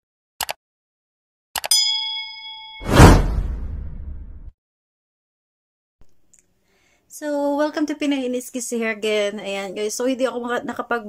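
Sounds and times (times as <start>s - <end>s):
notification bell ding: 1.6s - 2.9s
loud whoosh: 2.8s - 4.5s.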